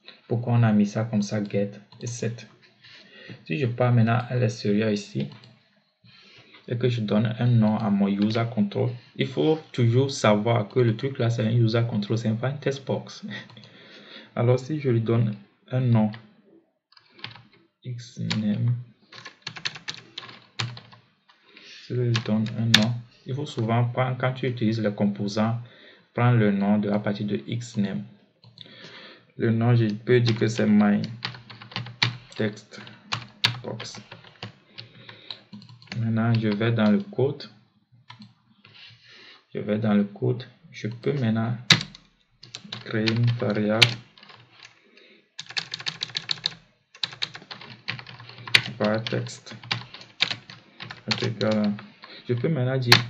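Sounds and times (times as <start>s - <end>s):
computer keyboard typing: 18.2s - 21.0s, 22.1s - 23.0s, 29.9s - 37.1s, 40.9s - 44.8s, 45.4s - 53.0s.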